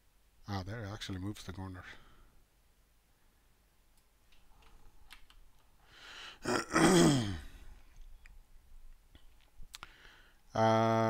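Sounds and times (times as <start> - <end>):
faint clicks: 3.9 - 5.8, 7.8 - 10.0
man coughing: 6.4 - 7.7.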